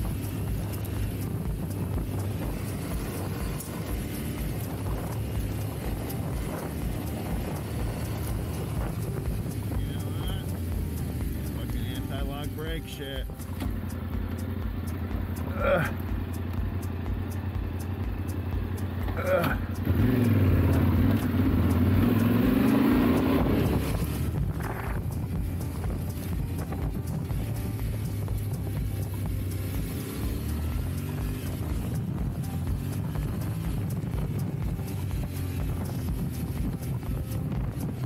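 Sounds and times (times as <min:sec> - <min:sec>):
motorcycle engine accelerating: 0:00.0 - 0:38.0.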